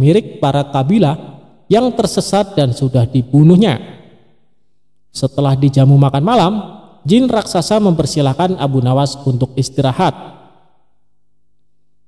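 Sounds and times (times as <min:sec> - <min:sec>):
man narrating: 0:00.0 - 0:04.0, 0:05.1 - 0:10.4.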